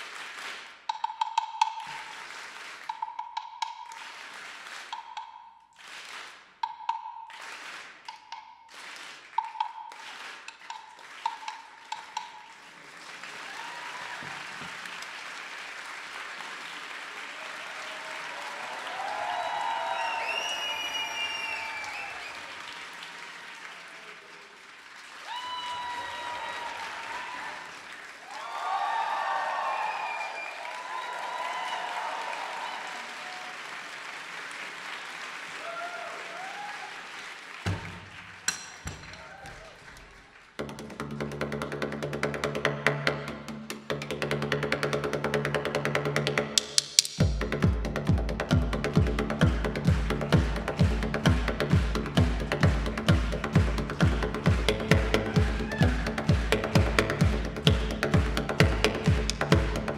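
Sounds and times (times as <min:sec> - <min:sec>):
audience applause: 0:00.0 - 0:00.8, 0:01.8 - 0:03.0, 0:03.9 - 0:05.0, 0:05.8 - 0:06.5, 0:07.3 - 0:08.0, 0:08.7 - 0:40.6, 0:49.8 - 0:57.5
audience cheering and whistling: 0:13.2 - 0:15.0, 0:17.2 - 0:24.5, 0:25.1 - 0:34.0, 0:35.5 - 0:37.8, 0:52.7 - 0:57.3
sharp percussion strikes: 0:46.2 - 0:59.9.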